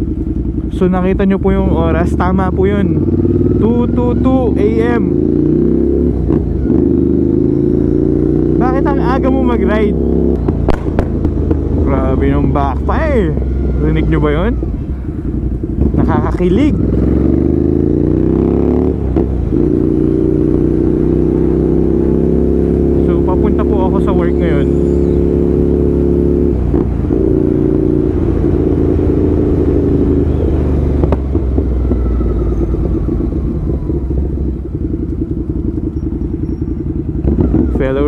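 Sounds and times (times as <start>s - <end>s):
motorcycle engine revving: 0.0s - 38.0s.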